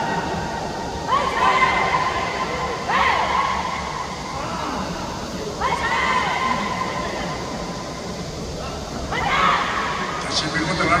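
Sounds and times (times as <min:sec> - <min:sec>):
steady background noise: 0:00.0 - 0:11.0.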